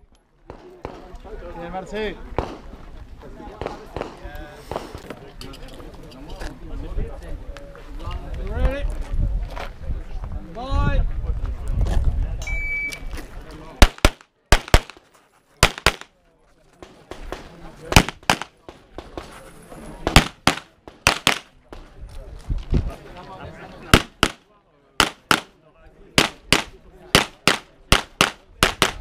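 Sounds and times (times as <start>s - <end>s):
pistol shots with echo: 2.4s - 2.6s, 13.8s - 15.0s, 15.6s - 16.1s, 16.8s - 19.1s, 20.1s - 21.5s, 23.9s - 24.4s, 25.0s - 25.6s, 26.2s - 29.0s
handgun shots: 20.1s - 21.5s, 25.0s - 25.5s.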